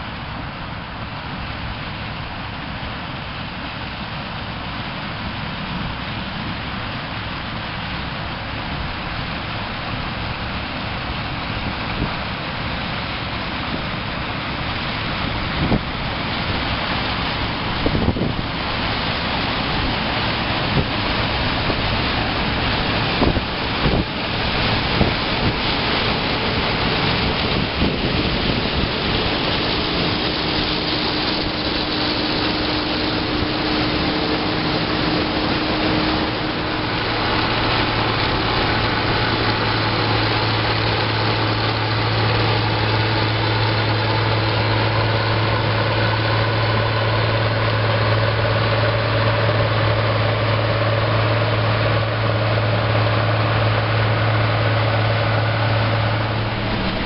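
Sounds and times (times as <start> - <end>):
combine harvester engine running: 0.0 - 57.0
steady low hum: 0.0 - 57.0.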